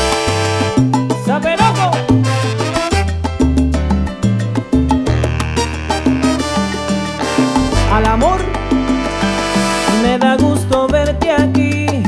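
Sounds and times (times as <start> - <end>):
horn section playing: 0.0 - 0.9, 1.6 - 3.2, 5.0 - 10.4
bass line: 0.0 - 11.8
latin percussion: 0.0 - 12.0.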